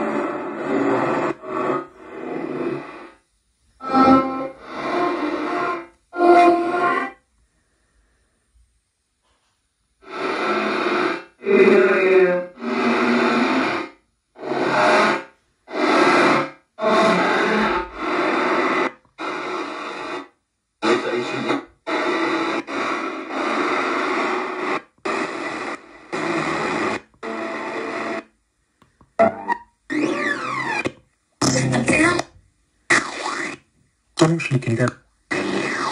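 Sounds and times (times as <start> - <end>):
radio static bursts: 0.0 - 3.2, 3.8 - 7.1, 10.0 - 28.3, 29.1 - 32.3, 32.9 - 35.9
broken radio broadcast fragments: 12.5 - 28.3, 29.1 - 35.9.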